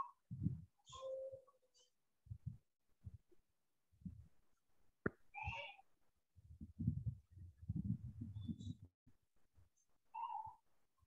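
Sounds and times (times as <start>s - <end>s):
low muffled rumbling: 6.4s - 8.9s.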